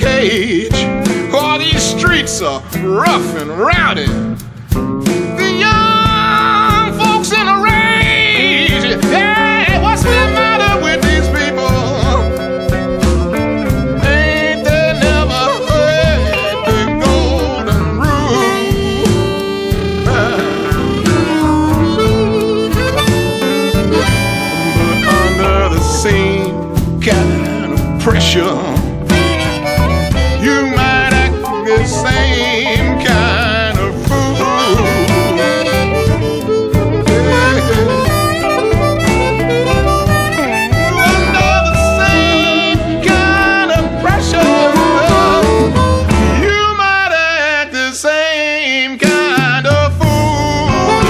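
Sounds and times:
steady drum beat: 0.0 - 46.8, 49.0 - 51.0
bass: 0.0 - 47.2, 49.0 - 51.0
harmonica lead line: 0.0 - 47.6, 49.0 - 51.0.

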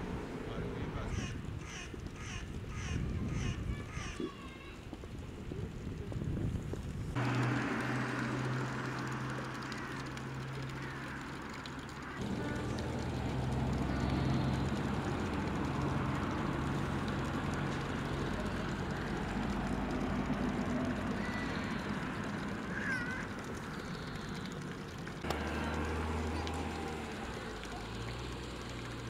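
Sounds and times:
low engine hum: 0.0 - 3.5, 4.9 - 29.0
street noise: 0.0 - 29.0.

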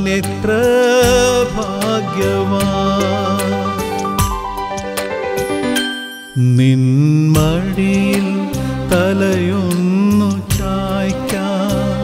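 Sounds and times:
devotional song: 0.0 - 12.0.

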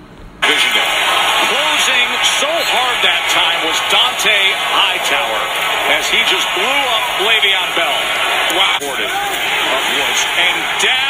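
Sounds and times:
man talking: 0.4 - 11.0.

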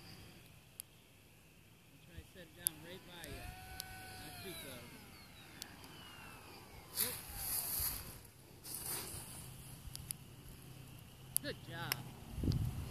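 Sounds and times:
electric motor whine: 1.6 - 12.9
short rushes of noise: 3.3 - 9.8.

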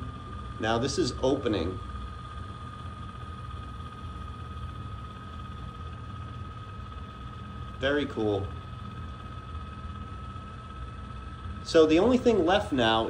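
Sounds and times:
valve motor whining: 0.0 - 13.0.

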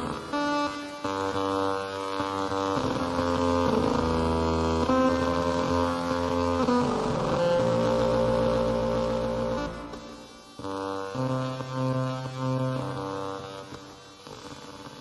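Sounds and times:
atonal electronic music: 0.0 - 13.4.

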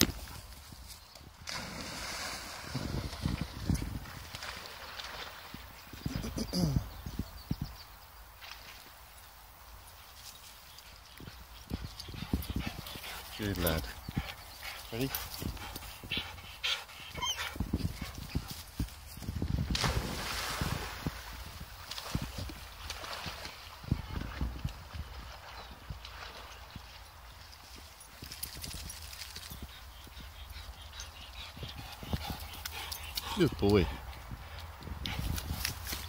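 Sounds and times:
dog splashing in water: 1.5 - 5.7
wind rumble on microphone: 2.4 - 4.6, 5.4 - 8.0, 11.2 - 14.5, 15.2 - 16.4, 17.1 - 26.9, 33.5 - 36.0.

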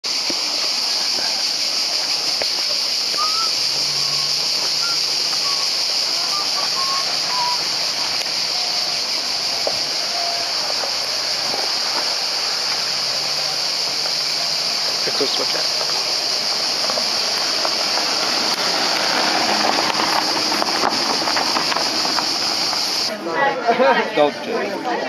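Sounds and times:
cicada chorus drone: 0.0 - 23.2
faint distant voices: 0.1 - 25.0.

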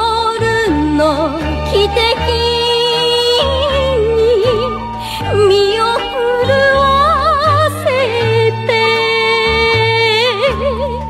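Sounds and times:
sustained musical accompaniment: 0.0 - 11.0.

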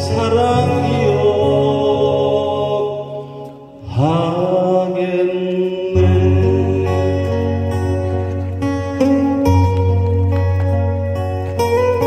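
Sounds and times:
acoustic guitar ballad: 0.0 - 12.0.

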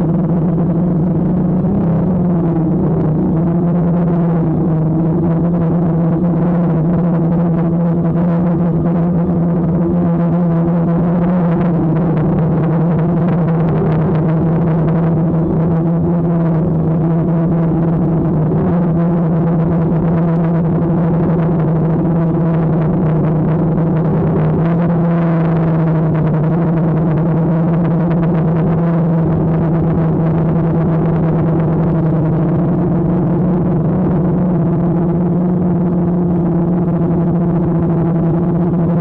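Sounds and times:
drone propellers humming: 0.0 - 39.0.

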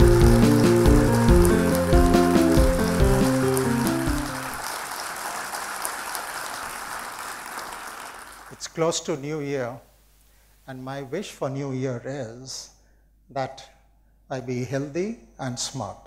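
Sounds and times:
melodic theme tune over drums: 0.0 - 4.6
crackling hiss: 0.0 - 6.6.

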